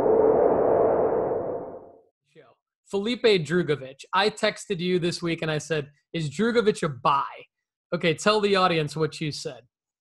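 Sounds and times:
electronic swell with humming tone: 0.0s - 2.0s.

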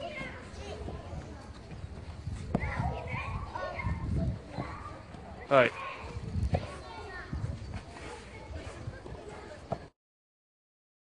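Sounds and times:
children's voices: 0.0s - 9.9s.

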